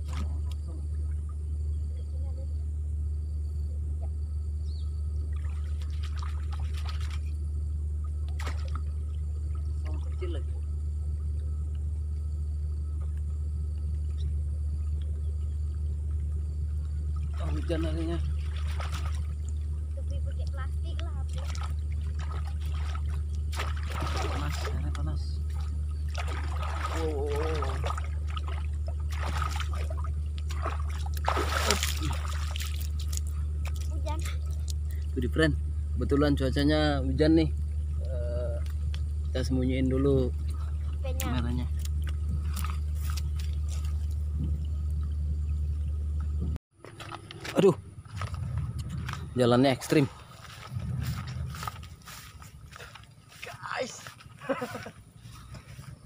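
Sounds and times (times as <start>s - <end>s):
water sloshing and splashing: 0.0s - 1.6s, 5.2s - 11.4s, 12.9s - 36.3s, 37.6s - 56.0s
low rumble: 0.0s - 56.0s
wind rumble on microphone: 40.3s - 46.6s, 47.3s - 52.8s.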